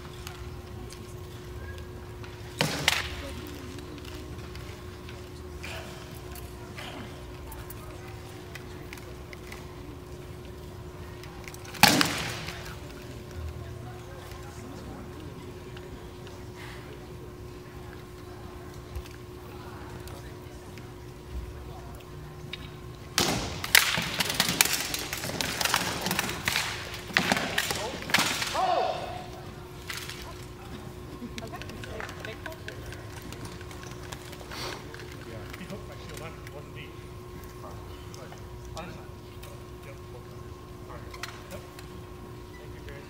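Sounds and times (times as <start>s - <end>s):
low crowd chatter: 0.0s - 43.0s
steady hall hum: 0.0s - 43.0s.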